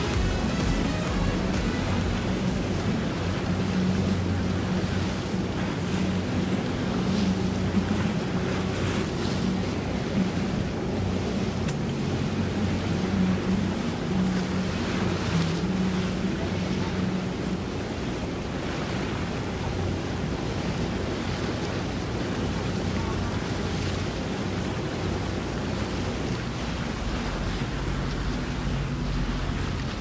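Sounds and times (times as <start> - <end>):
boat engine humming: 0.0 - 30.0
moving water: 0.0 - 30.0.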